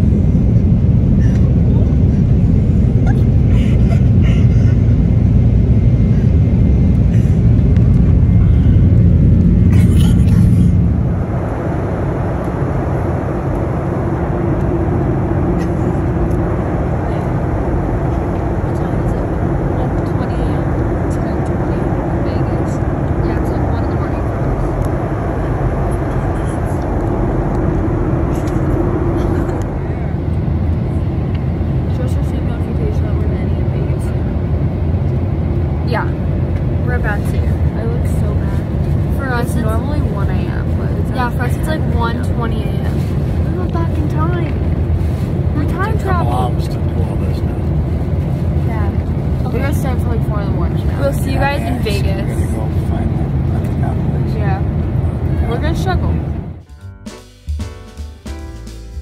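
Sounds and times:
airliner cabin engine rumble: 0:00.0 - 0:57.0
faint voices: 0:16.8 - 0:27.4.

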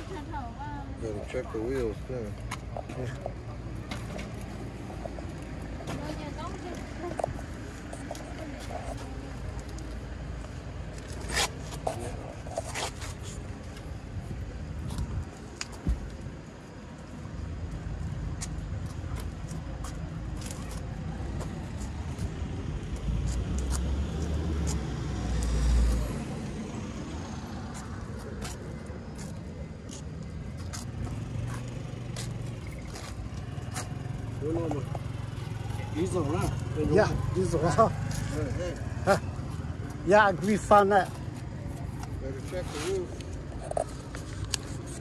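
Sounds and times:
traffic rumble: 0:00.0 - 0:45.0
vehicle passing: 0:21.0 - 0:45.0.

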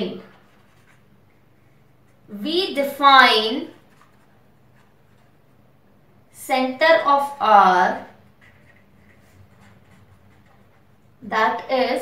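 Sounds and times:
pen scratching on paper: 0:00.2 - 0:01.2, 0:03.6 - 0:05.4, 0:08.3 - 0:11.2.

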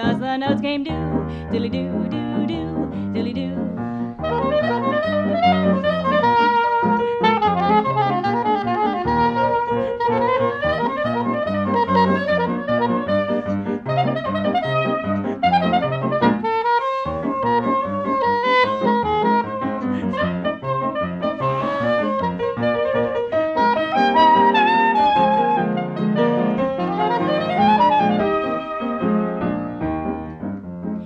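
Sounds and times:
piano accompaniment: 0:00.0 - 0:31.0
soprano saxophone solo: 0:04.2 - 0:29.8.

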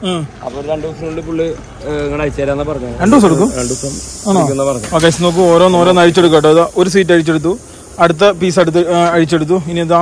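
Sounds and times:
man speaking: 0:00.1 - 0:10.0
steady high hiss: 0:00.8 - 0:10.0.

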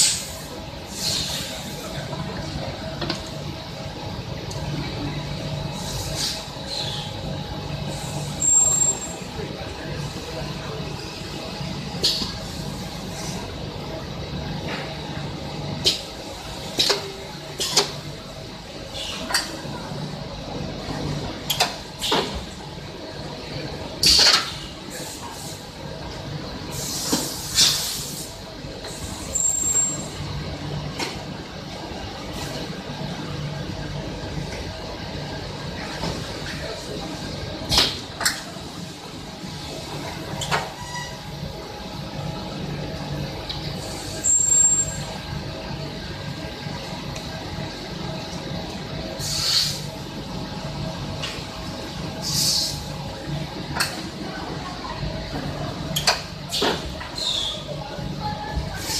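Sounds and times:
compressed air hiss: 0:49.2 - 0:49.8
sharp air bursts: 0:49.2 - 0:49.8.

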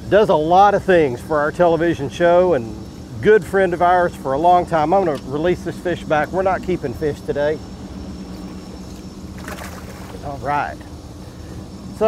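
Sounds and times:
boat motor humming: 0:00.0 - 0:12.0
fish splashing in water: 0:09.3 - 0:10.3.

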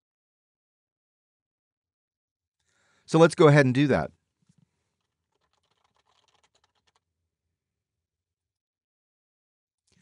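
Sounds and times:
faint computer keyboard typing: 0:05.0 - 0:07.0.

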